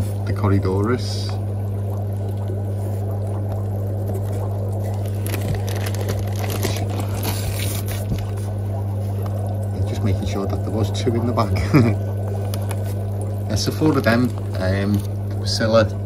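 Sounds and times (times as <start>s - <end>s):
low electrical hum: 0.0s - 16.0s
plastic bags crinkling: 4.8s - 8.4s.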